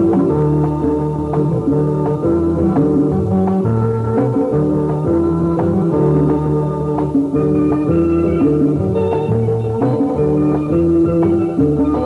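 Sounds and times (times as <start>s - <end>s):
drums: 0.0s - 12.0s
plucked electric guitar melody: 0.0s - 12.0s
walking bass line: 0.0s - 12.0s.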